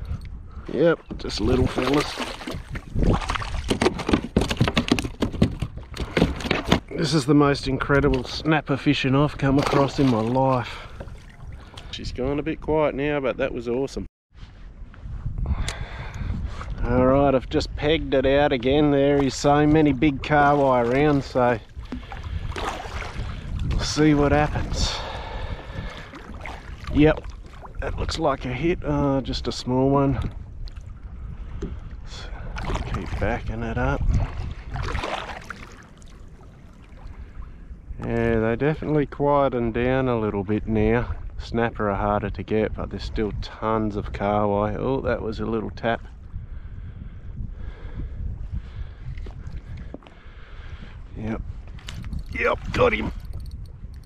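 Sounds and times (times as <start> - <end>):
wind buffeting microphone: 0.0 - 54.0
water against plastic hull: 1.0 - 7.2, 9.4 - 11.9, 18.6 - 28.2, 32.5 - 37.4
water slapping plastic hull: 1.5 - 7.0, 34.1 - 36.2.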